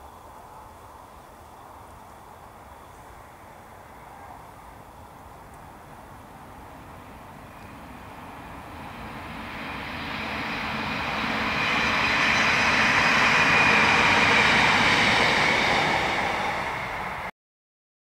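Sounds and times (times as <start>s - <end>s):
diesel train engines: 0.0s - 17.3s
train wheels on rails: 5.5s - 17.3s.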